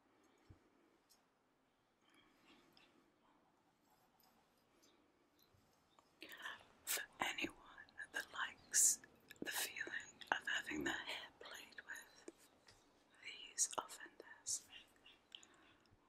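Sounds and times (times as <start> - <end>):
woman whispering: 6.2 - 12.4, 13.1 - 15.8.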